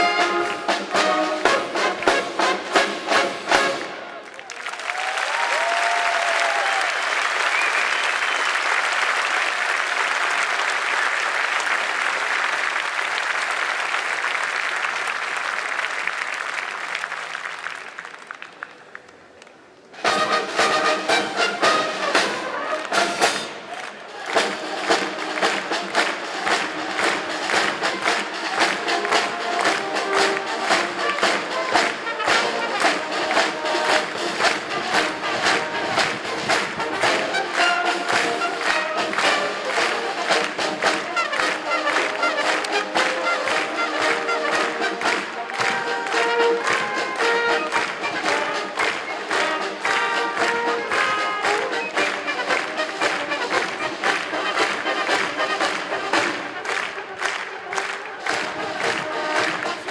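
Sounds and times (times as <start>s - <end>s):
brass band playing: 0.0s - 4.3s, 19.9s - 59.9s
audience applauding: 0.0s - 59.9s.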